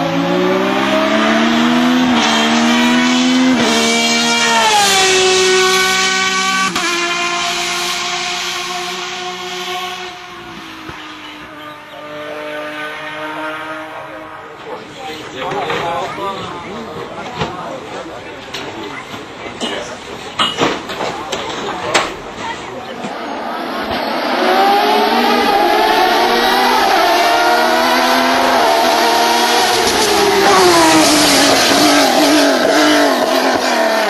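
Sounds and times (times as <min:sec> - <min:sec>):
race car accelerating at high revs: 0:00.0 - 0:14.8, 0:22.9 - 0:34.0.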